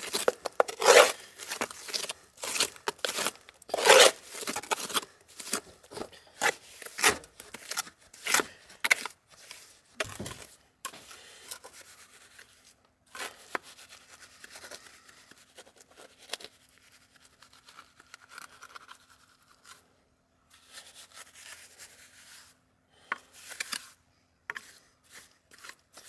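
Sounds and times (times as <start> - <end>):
trowel scraping wet mortar: 0.0 - 9.6, 23.4 - 26.0.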